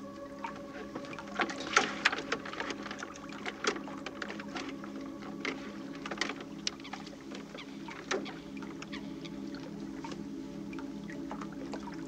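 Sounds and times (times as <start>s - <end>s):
faint steady drone: 0.0s - 12.0s.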